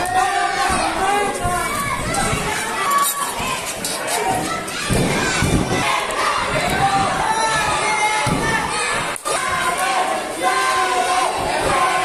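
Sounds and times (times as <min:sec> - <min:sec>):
crowd shouting and cheering: 0:00.0 - 0:12.0.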